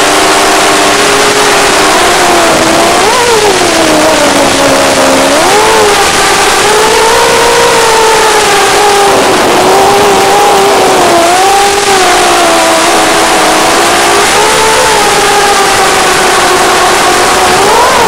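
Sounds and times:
drone motors whining: 0.0s - 18.0s.

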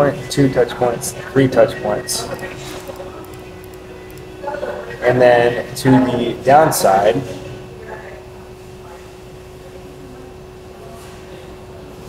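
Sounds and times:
public place background hum: 0.0s - 12.0s.

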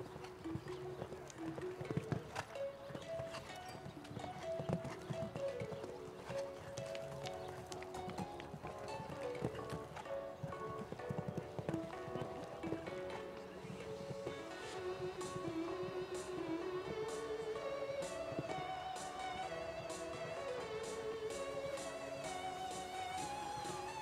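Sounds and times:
background music: 0.0s - 24.0s
horse hoofbeats on sand: 0.0s - 24.0s.

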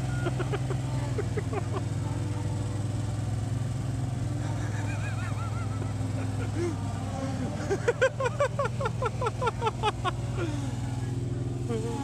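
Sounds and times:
road roller engine running: 0.0s - 12.0s.

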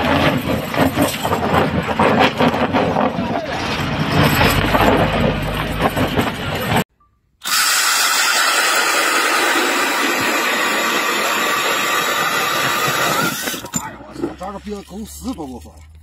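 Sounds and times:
auger grinding through ice: 0.0s - 6.8s, 7.4s - 16.0s
cordless drill motor whine: 7.4s - 13.7s.

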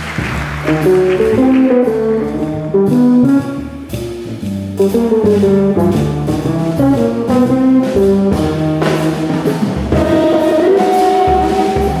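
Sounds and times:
drums: 0.0s - 12.0s
upright bass: 0.0s - 12.0s
trombone melody: 0.6s - 12.0s
electric guitar: 7.8s - 12.0s.

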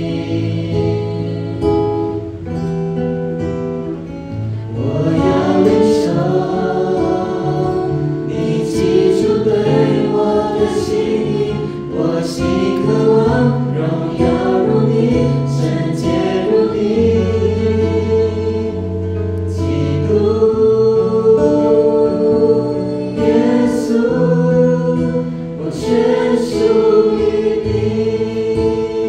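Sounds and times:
group singing worship song: 0.0s - 2.6s, 4.4s - 29.0s
acoustic guitar: 0.0s - 29.0s.

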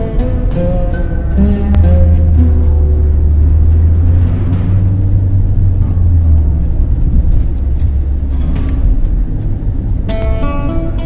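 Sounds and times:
engine and road rumble in car: 0.0s - 11.0s.

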